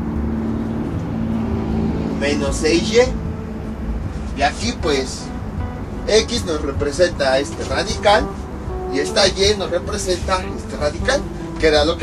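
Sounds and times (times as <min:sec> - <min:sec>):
held low tones: 0:00.0 - 0:12.0.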